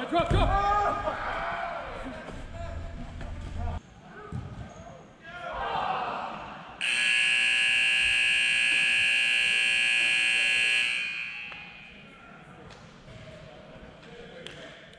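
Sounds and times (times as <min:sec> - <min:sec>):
game clock buzzer: 0:06.8 - 0:12.0.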